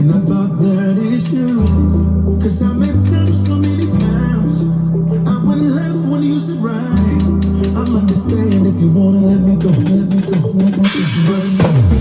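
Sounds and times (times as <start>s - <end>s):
recorded song with bass and guitar: 0.0s - 12.0s
drum kit playing: 7.0s - 8.8s, 9.5s - 12.0s.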